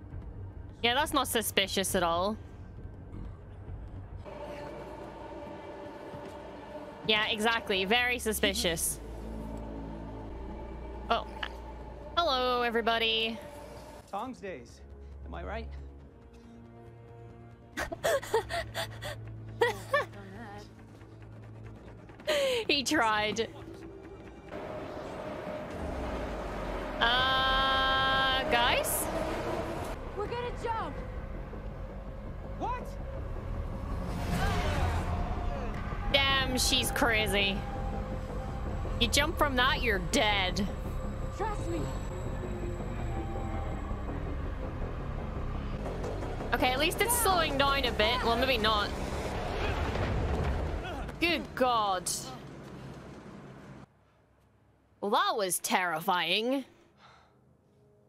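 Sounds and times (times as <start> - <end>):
woman laughing hard: 17.8 - 20.4
vehicle rumble: 17.9 - 54.2.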